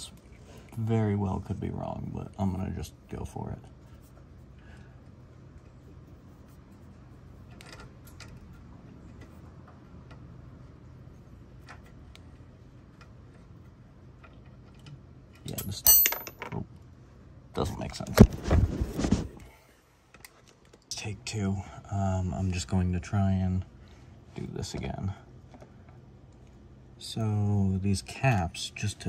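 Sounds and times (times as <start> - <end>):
small metal parts clinking: 15.4 - 16.6.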